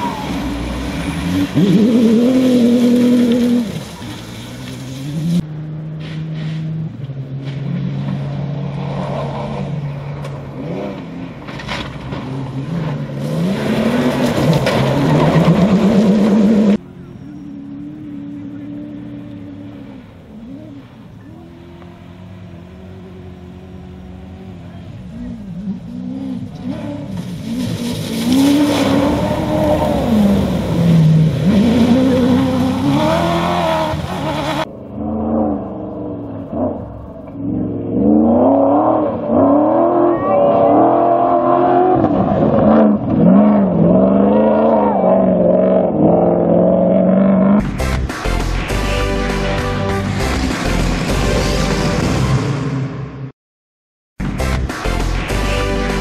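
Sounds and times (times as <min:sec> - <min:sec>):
rally car engines revving: 0:00.0 - 0:53.3.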